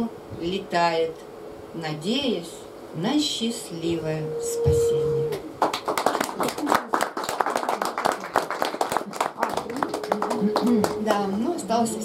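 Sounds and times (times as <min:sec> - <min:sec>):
woman reciting poem: 0:01.8 - 0:05.4, 0:10.4 - 0:12.0
audience applauding: 0:05.6 - 0:11.0.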